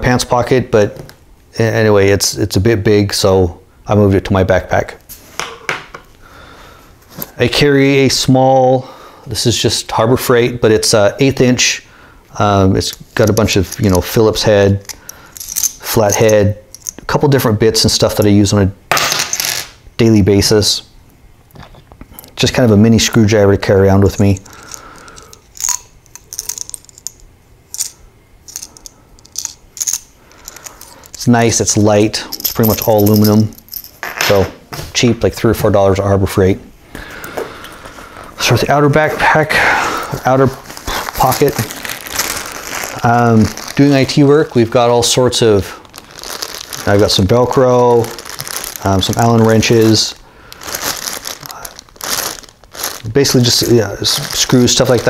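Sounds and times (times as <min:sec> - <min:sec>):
small metal tools clinking: 0:13.2 - 0:14.2, 0:14.8 - 0:17.1, 0:24.1 - 0:31.3, 0:32.2 - 0:34.4
plastic bag crinkling: 0:24.0 - 0:27.9, 0:40.1 - 0:55.0.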